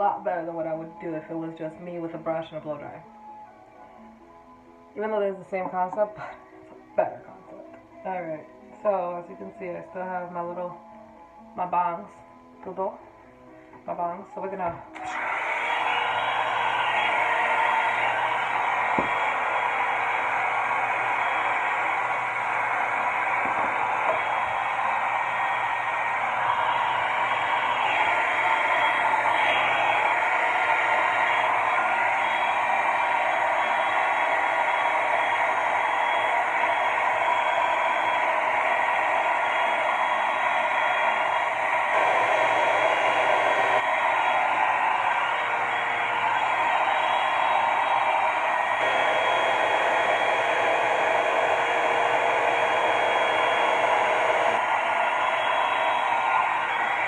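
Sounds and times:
hair dryer blowing air: 14.9s - 57.0s.

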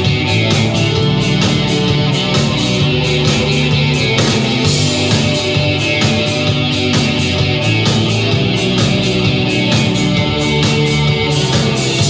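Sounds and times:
live rock band playing: 0.0s - 12.0s
steady cymbal beat: 0.0s - 12.0s.

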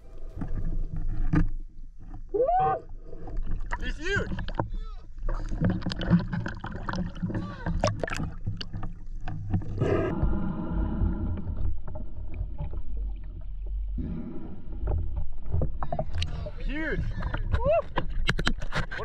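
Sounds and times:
water sloshing and splashing: 0.0s - 10.2s, 10.9s - 14.0s, 14.6s - 19.0s.

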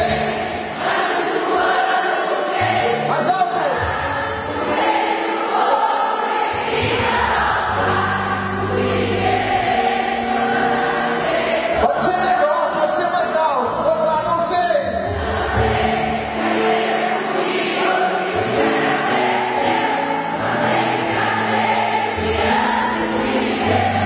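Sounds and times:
choir singing church song: 0.0s - 24.0s
instrumental backing with bass notes: 6.7s - 24.0s.

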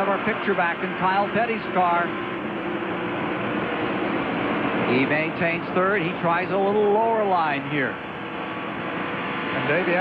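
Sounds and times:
dense wash of noise: 0.0s - 10.0s.

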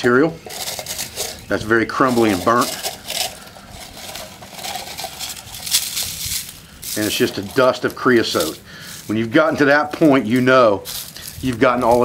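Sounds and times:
charred bark crunching and crackling: 0.0s - 12.0s.

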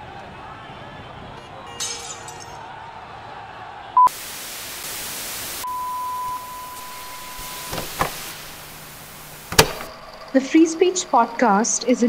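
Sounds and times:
television static hiss: 4.1s - 10.1s
steady high beep tone: 5.6s - 7.9s.

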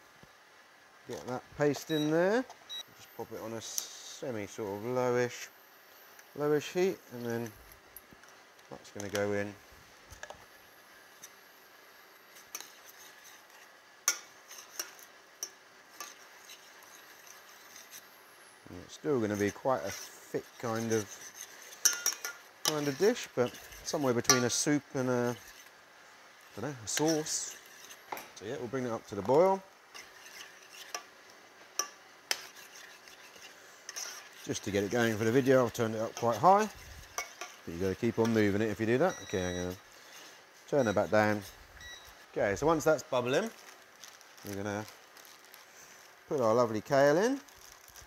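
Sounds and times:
metal spoon stirring in saucepan: 12.2s - 18.1s, 18.9s - 25.8s, 26.4s - 46.2s
spoon clinking and scraping pan: 19.4s - 25.7s, 29.9s - 31.1s, 31.8s - 38.5s.

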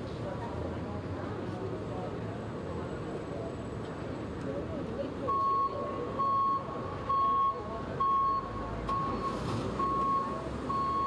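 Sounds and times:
low street noise rumble: 0.0s - 11.0s
reversing alarm beeping: 5.3s - 11.0s.

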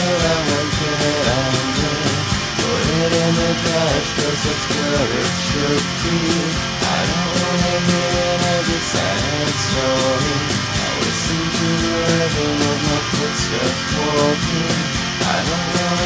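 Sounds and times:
instrumental indie rock music: 0.0s - 16.0s.

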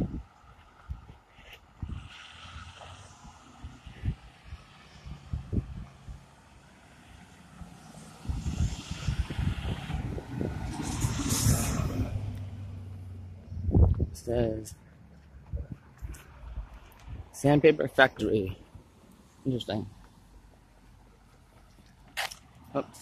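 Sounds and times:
truck driving past: 2.0s - 13.9s.

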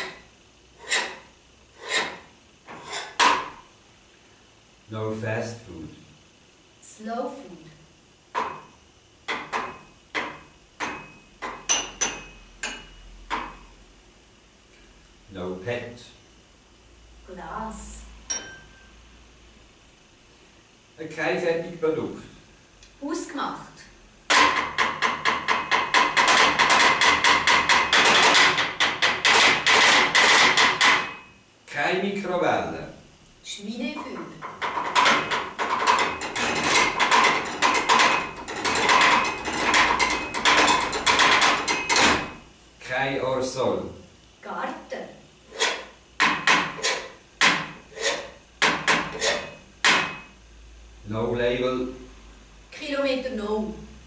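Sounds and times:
steady ringing tone: 18.2s - 19.0s
sharp wooden knocks: 24.3s - 31.2s, 34.4s - 42.3s, 46.2s - 50.2s.

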